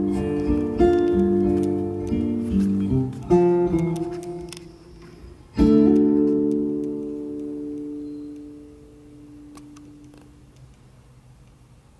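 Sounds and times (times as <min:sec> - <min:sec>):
acoustic guitar through speakers: 0:00.0 - 0:11.1.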